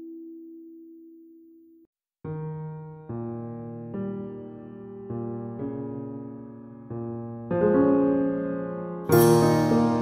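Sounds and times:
held keyboard chord: 0:09.1 - 0:10.0.

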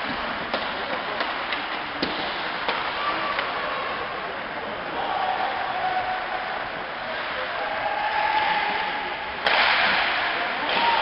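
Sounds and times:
people shouting: 0:07.6 - 0:09.0, 0:10.6 - 0:11.0.

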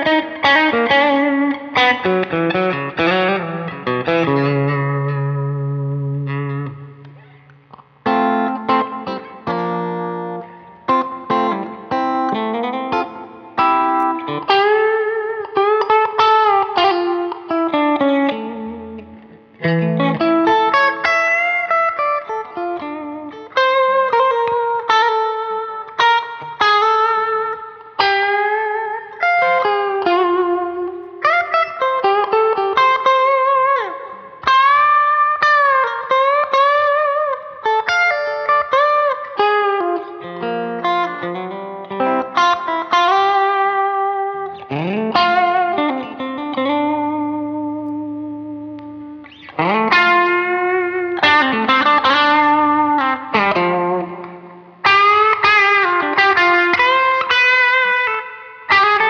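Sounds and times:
electric guitar lead lines: 0:00.0 - 0:59.0.

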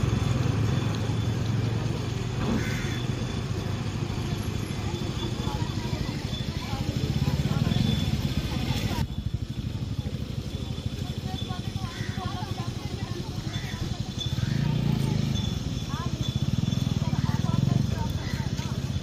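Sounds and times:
people talking in background: 0:00.0 - 0:19.0.

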